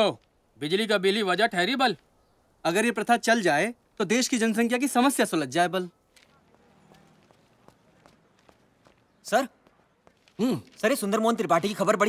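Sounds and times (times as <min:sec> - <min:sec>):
faint footsteps: 0:06.0 - 0:12.0
man speaking loudly: 0:10.4 - 0:12.0.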